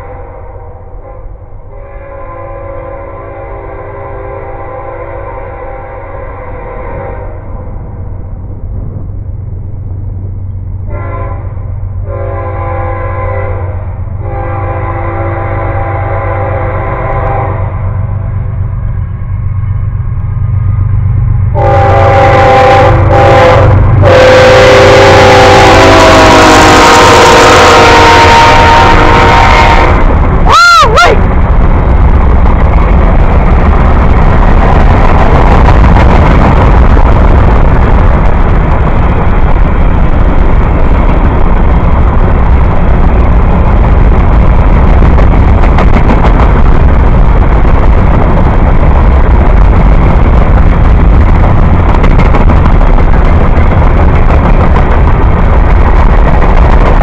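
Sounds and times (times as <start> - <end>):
train horn blasts: 0.0 - 7.5, 10.9 - 18.1, 21.5 - 31.2
freight cars rumbling on rails: 0.0 - 57.0.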